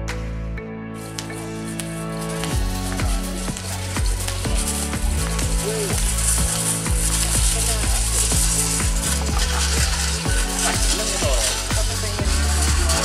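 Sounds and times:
music with steady beat: 0.0s - 13.0s
deep held bass line: 2.0s - 13.0s.

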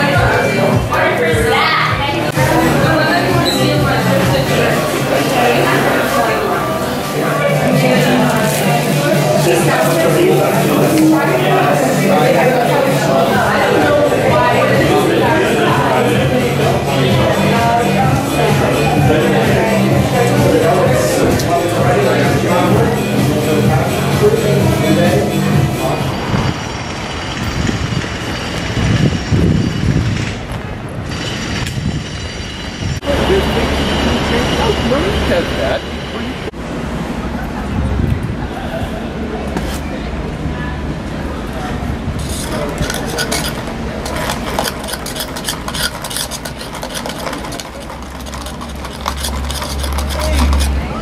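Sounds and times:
street noise rumble and hiss: 0.0s - 51.0s
ice cubes clinking in plastic cup: 42.4s - 50.7s.

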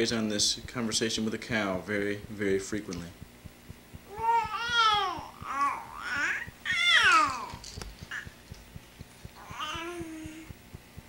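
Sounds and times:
baby cooing: 4.1s - 8.4s, 9.4s - 10.5s.

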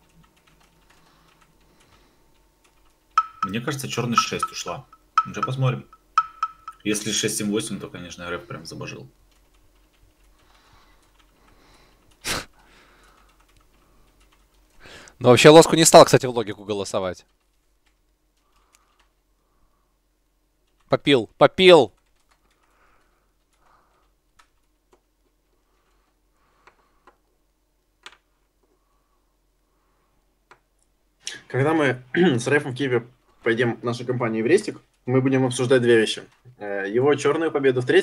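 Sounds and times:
computer keyboard typing clicks: 0.0s - 6.9s, 9.3s - 12.2s, 13.0s - 14.8s, 22.0s - 25.0s.

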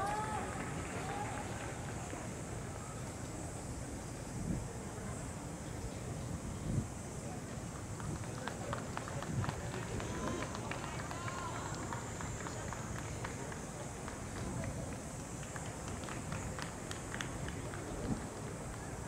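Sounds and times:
faint distant voices: 0.0s - 19.0s.

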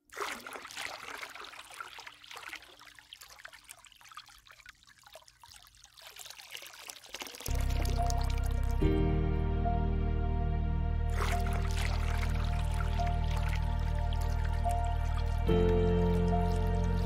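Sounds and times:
water trickling and splashing: 0.0s - 8.9s, 11.1s - 17.0s
ambient music: 7.5s - 17.0s.

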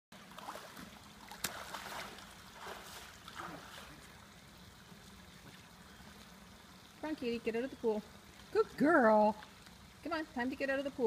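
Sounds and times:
pool water lapping: 0.1s - 11.0s.

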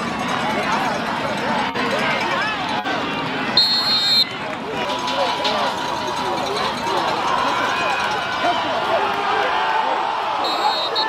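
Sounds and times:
crowd and players shouting: 0.0s - 11.0s
referee's whistle: 3.6s - 4.3s, 10.4s - 11.0s.

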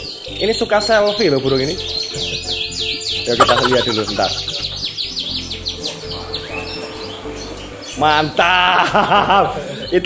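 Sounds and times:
canary singing: 0.0s - 8.3s.

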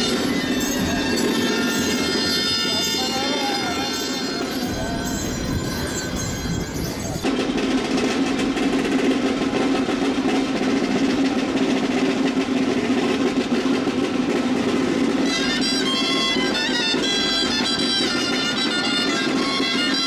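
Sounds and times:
drums playing rapid roll: 0.0s - 20.0s.

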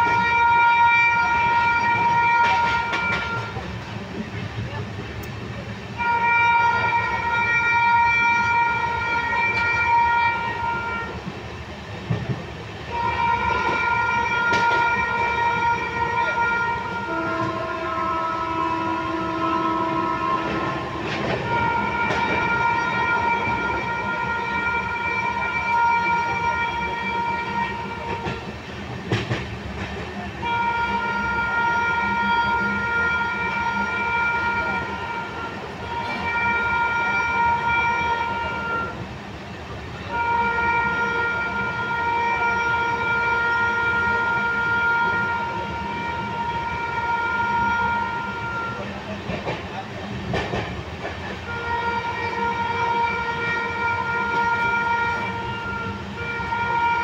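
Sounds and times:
train horn blasts: 0.0s - 3.8s, 6.0s - 11.3s, 12.8s - 28.6s, 30.3s - 39.1s, 40.0s - 49.0s, 51.4s - 57.0s
train rumble and clatter: 0.0s - 57.0s.

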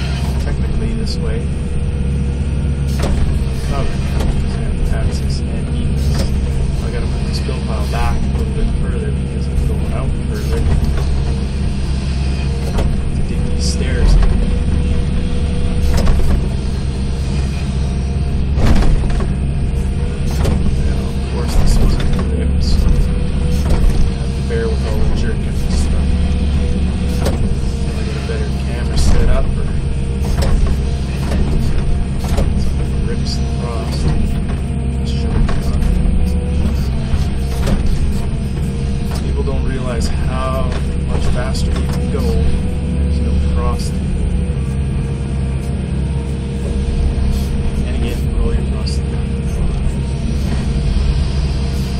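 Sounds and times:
diesel engine running: 0.0s - 51.9s.

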